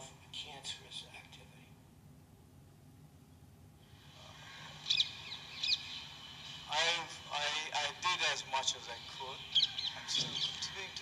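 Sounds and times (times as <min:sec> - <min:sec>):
faint outdoor hiss: 0:00.0 - 0:11.0
bird chirps: 0:04.8 - 0:06.2, 0:09.4 - 0:10.8.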